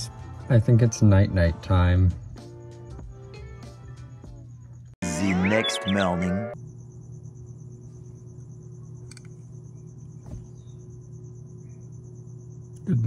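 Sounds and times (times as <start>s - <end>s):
steady low hum: 4.8s - 13.0s
faint high pulsing trill: 5.0s - 13.0s.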